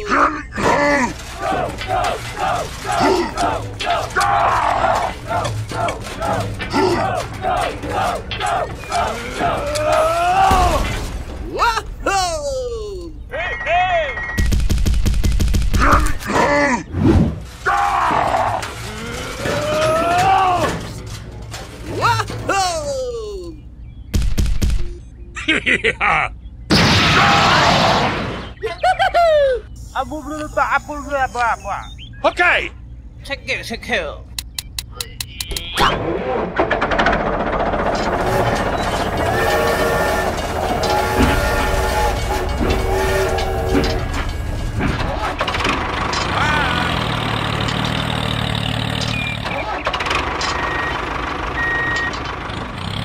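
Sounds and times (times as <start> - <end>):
rapid clattering sound effect: 1.0 - 11.4, 35.9 - 53.0
cartoon character cries and groans: 11.6 - 13.2, 22.0 - 23.6, 29.1 - 29.7
cartoon character laughing: 25.4 - 26.4, 28.6 - 29.8.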